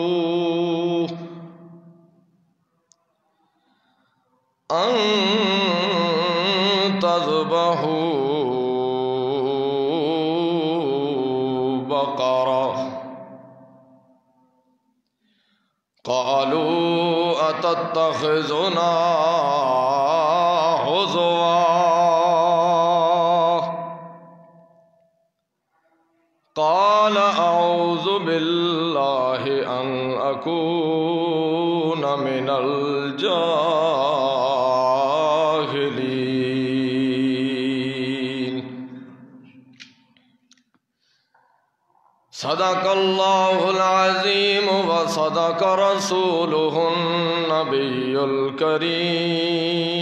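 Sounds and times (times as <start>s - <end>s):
man chanting into a microphone: 0.0s - 1.7s, 4.7s - 13.3s, 16.0s - 24.0s, 26.5s - 39.1s, 42.3s - 50.0s
man reciting melodically: 0.0s - 1.8s, 4.6s - 13.5s, 16.0s - 24.2s, 26.5s - 39.4s, 42.3s - 50.0s.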